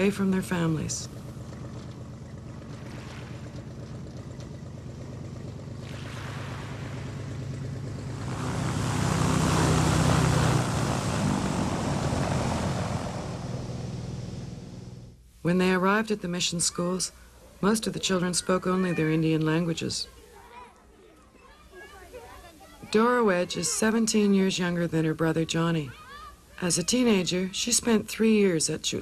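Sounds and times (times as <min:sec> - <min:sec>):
plane engine humming: 0:00.0 - 0:15.3.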